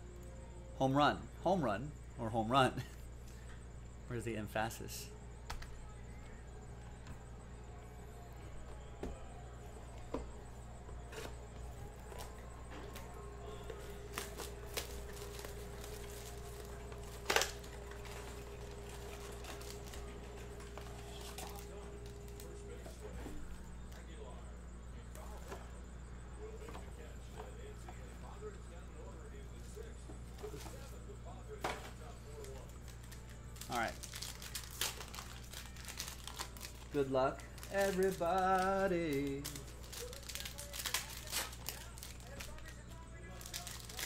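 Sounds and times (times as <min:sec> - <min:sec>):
steady low hum: 0:00.0 - 0:44.0
cardboard and foil packs handled: 0:09.4 - 0:24.1, 0:29.6 - 0:44.0.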